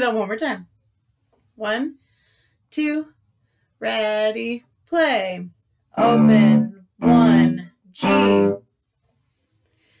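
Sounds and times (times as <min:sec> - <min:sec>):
cello bowed note: 0:06.0 - 0:08.6.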